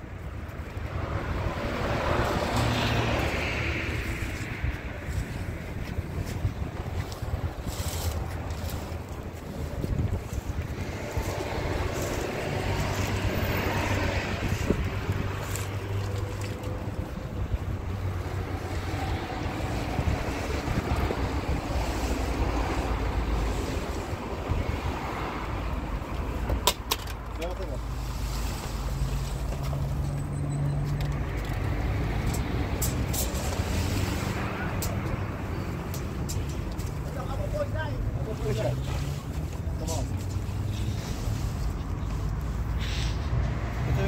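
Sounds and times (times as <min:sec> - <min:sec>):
wind buffeting microphone: 0:03.6 - 0:26.6.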